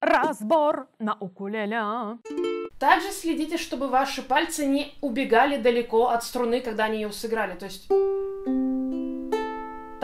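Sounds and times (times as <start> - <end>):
ukulele fingerpicked arpeggio: 2.2 - 2.8, 7.8 - 10.0.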